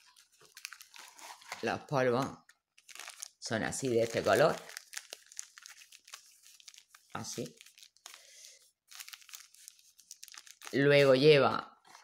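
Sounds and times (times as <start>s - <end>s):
plastic bag crinkling: 0.0s - 1.8s, 2.7s - 11.3s.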